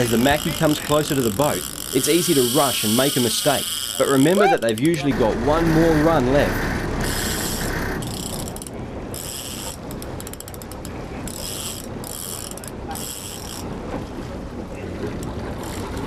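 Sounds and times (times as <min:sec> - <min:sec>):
fishing reel ratcheting: 0:00.0 - 0:05.0, 0:07.0 - 0:13.7, 0:15.6 - 0:16.0
low rumble: 0:05.1 - 0:09.1.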